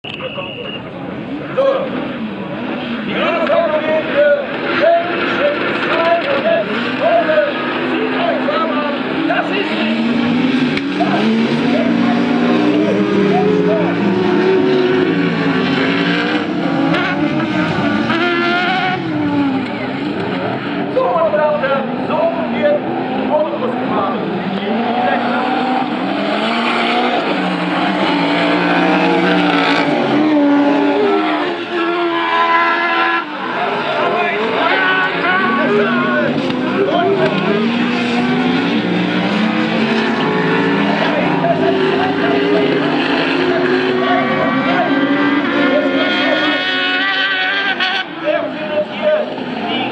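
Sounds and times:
racing buggy engines revving: 0.0 - 49.9.

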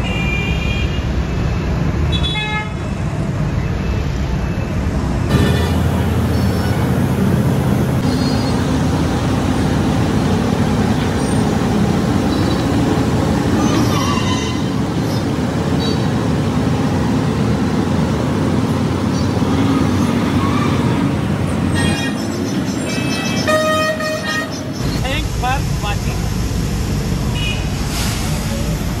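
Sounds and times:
vehicle horns: 0.0 - 1.1, 2.1 - 2.9, 13.7 - 14.8, 21.7 - 22.3, 22.9 - 24.8
street traffic rumbling: 0.0 - 29.0
heavy truck engine: 3.0 - 29.0.

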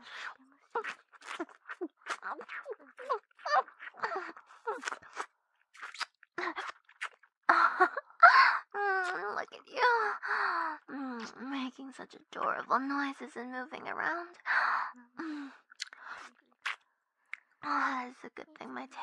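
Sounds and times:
woman's wet mouth sounds: 0.1 - 7.3, 15.6 - 17.6.

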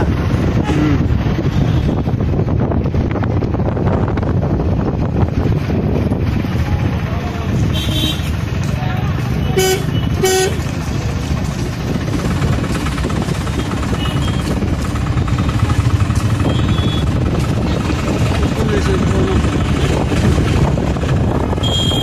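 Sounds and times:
engine running loudly: 0.0 - 22.0
high-pitched horn toots: 9.5 - 10.6, 21.6 - 22.0
people's voices: 17.4 - 20.3.

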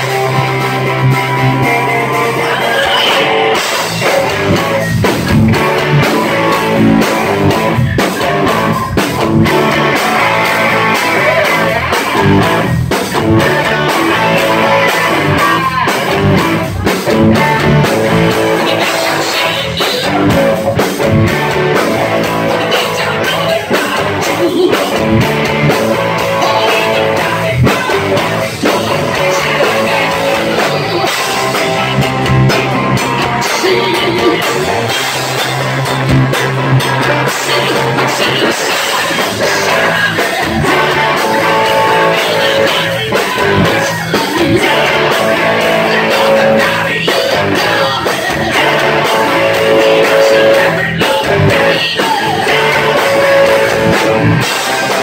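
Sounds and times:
drum kit: 0.0 - 55.0
electric guitars: 0.0 - 55.0.

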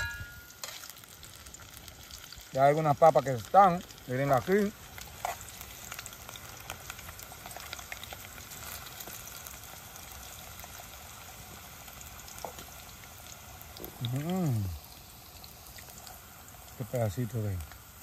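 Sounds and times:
potatoes sizzling in oil: 0.0 - 18.0.

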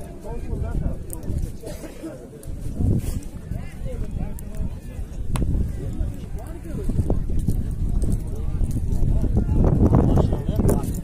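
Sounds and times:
men talking in a crowd: 0.0 - 11.0.

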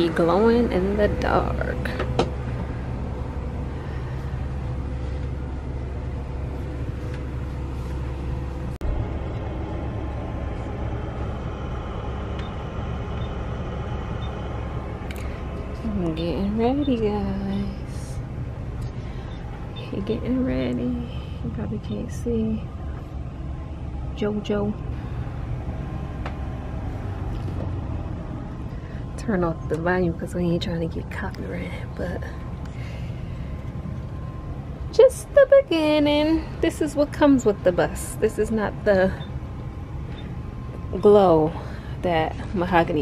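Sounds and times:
bus engine idling: 0.0 - 43.0.

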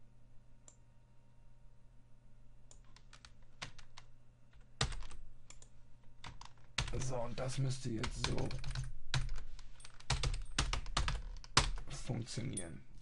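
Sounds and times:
faint low hum: 0.0 - 13.0
typing on keyboard: 2.7 - 4.1, 4.8 - 7.1, 8.0 - 11.9.

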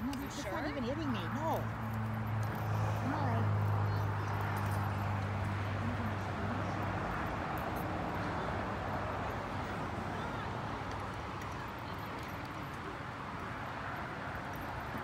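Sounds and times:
distant people talking: 0.0 - 15.0.

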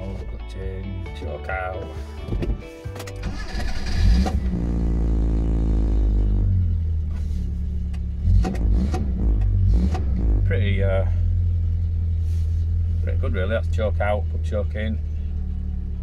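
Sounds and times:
engine running with low drone: 0.0 - 16.0
engine cranking and starting: 2.9 - 4.8.

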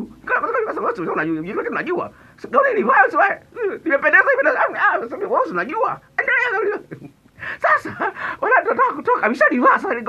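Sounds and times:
man speaking animatedly: 0.0 - 10.0.

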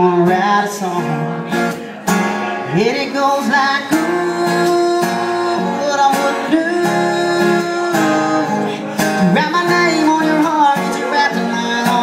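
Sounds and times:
acoustic guitar strumming: 0.0 - 12.0
man singing: 0.0 - 12.0.

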